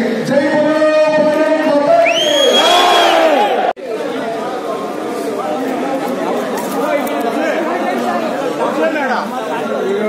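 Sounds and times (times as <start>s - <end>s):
crowd of men chattering: 0.0s - 10.0s.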